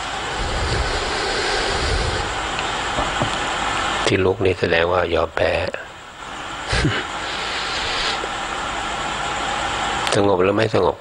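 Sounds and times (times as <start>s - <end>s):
steady rushing noise: 0.0s - 4.3s.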